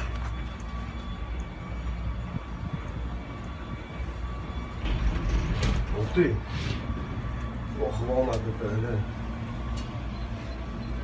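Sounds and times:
faint steady whine: 0.0 - 11.0.

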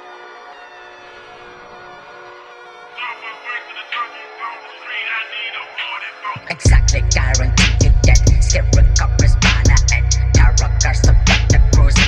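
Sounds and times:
processed vocal sample: 3.0 - 12.0.

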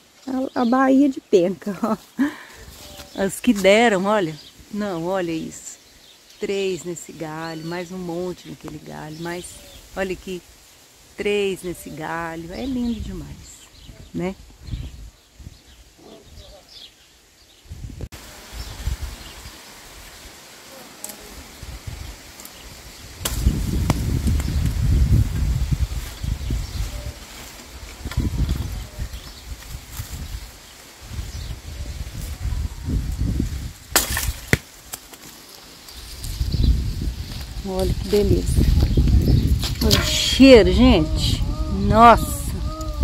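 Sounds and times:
steady outdoor hiss: 0.0 - 43.0
wind rumbling on microphone: 11.2 - 16.6, 17.6 - 20.3, 21.3 - 34.5, 35.9 - 43.0.

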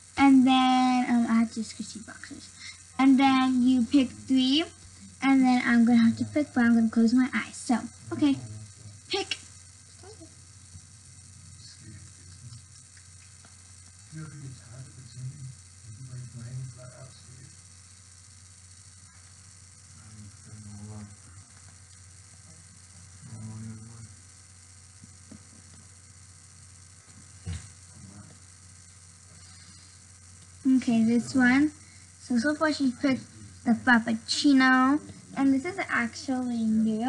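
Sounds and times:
faint mains hum: 0.0 - 37.0
steady hiss: 0.0 - 37.0
low murmured voices: 14.0 - 17.7.

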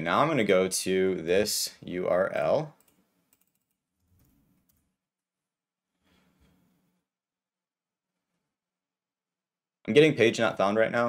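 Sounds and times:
computer keyboard typing clicks: 2.8 - 3.8.

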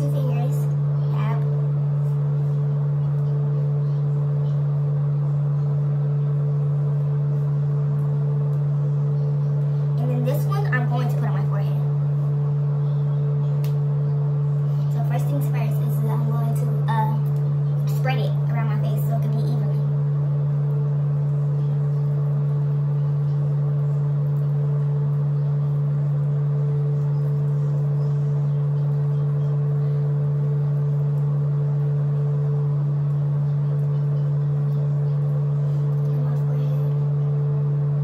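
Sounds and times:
steady low hum: 0.0 - 38.0.

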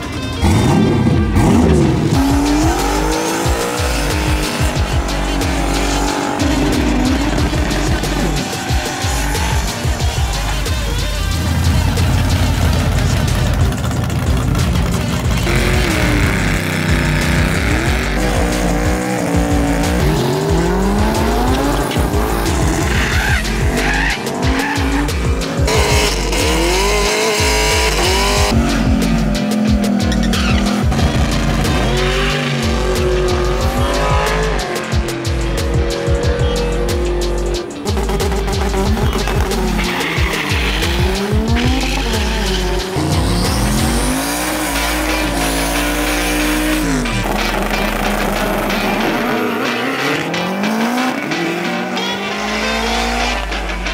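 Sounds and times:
background music: 0.0 - 53.9
car engines revving: 0.0 - 53.9
tyres spinning and squealing: 0.0 - 53.9.

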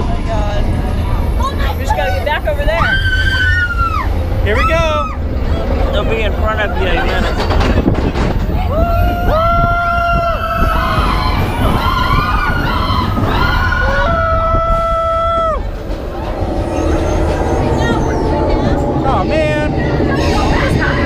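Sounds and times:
roller coaster train rumbling: 0.0 - 21.0
wind rumble on microphone: 0.0 - 21.0
roller coaster riders screaming: 1.4 - 21.0.

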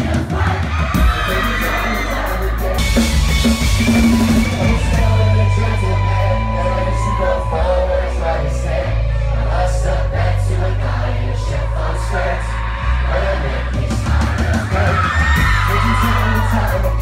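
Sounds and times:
live pop-rock band: 0.0 - 17.0
man singing: 0.9 - 12.5, 14.4 - 17.0.

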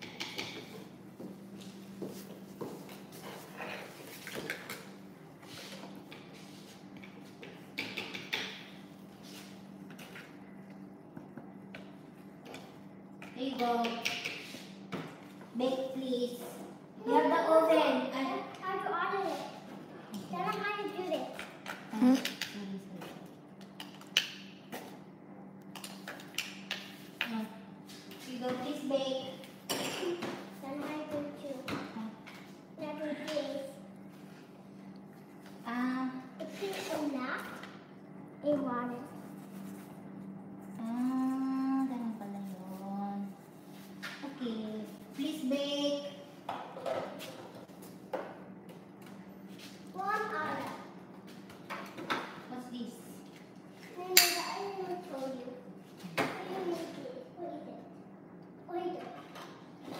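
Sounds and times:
young child's voice: 15.7 - 22.3, 28.7 - 32.2, 35.7 - 37.6, 49.9 - 50.9, 53.9 - 57.9, 58.7 - 59.3.

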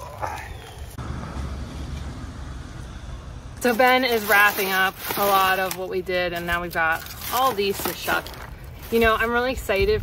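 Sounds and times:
outdoor low rumble: 0.0 - 7.2.

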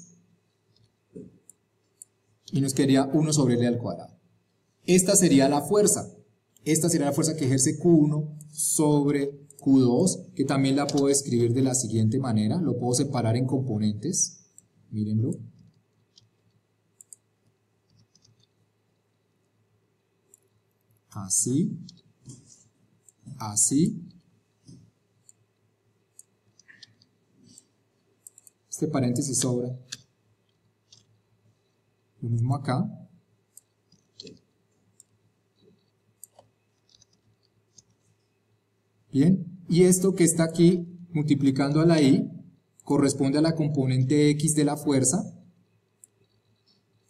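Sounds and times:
mouse and keyboard clicks: 10.8 - 11.2, 15.6 - 17.3, 17.9 - 18.6, 26.1 - 28.6, 29.4 - 31.2, 33.5 - 38.0.

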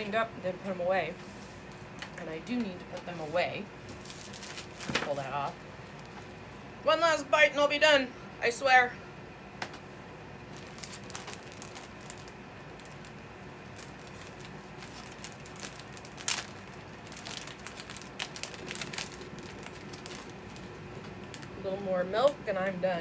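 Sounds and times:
plastic sleeve and paper rustling: 2.9 - 6.4, 10.5 - 21.6.

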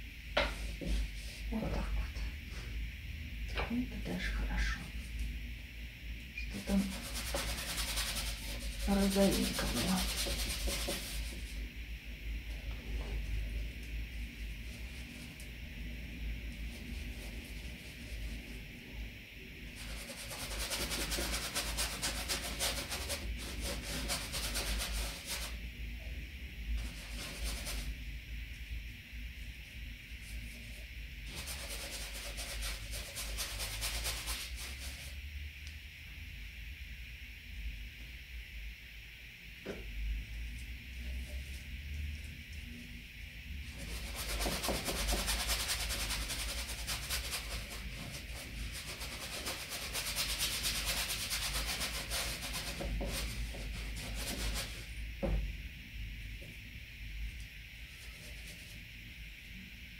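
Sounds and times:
paintbrush scrubbing on canvas: 6.5 - 11.6, 19.7 - 25.6, 26.8 - 28.0, 30.2 - 35.2, 43.7 - 55.0.

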